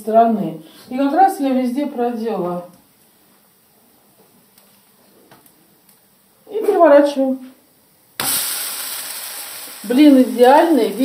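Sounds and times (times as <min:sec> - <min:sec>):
pancake sizzling in frying pan: 0:08.2 - 0:11.0.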